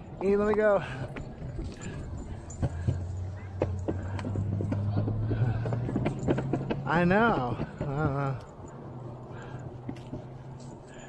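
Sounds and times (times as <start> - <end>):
wheels rolling over pavement: 0.1 - 11.0.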